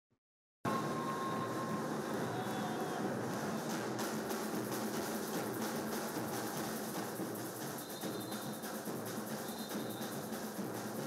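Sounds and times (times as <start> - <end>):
snare and bass drums beating: 2.2 - 11.0.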